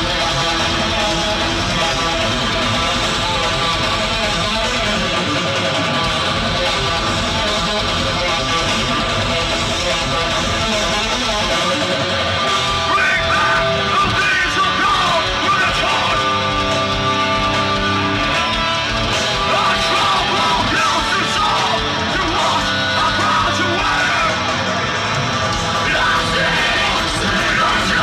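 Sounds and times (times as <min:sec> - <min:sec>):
distorted electric guitars: 0:00.0 - 0:28.0
drums: 0:00.0 - 0:28.0
live metal band: 0:00.0 - 0:28.0
sliding high guitar notes: 0:00.0 - 0:28.0.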